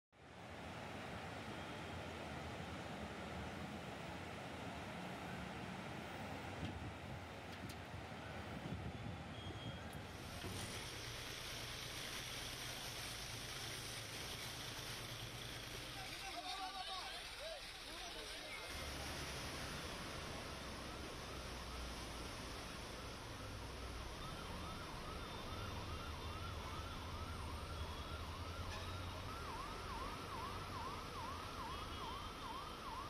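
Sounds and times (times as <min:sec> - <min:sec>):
floodwater rushing: 0:10.1 - 0:28.4.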